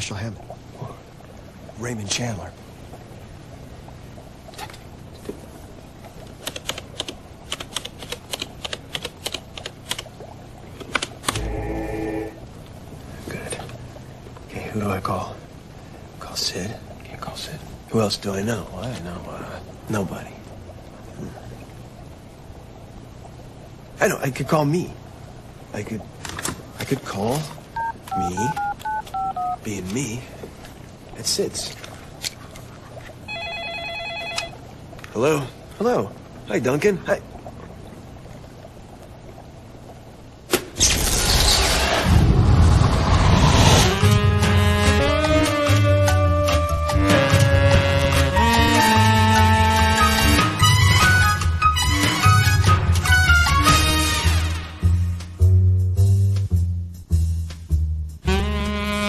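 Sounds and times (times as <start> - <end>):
telephone ringing warbling trill: 33.3 - 34.6.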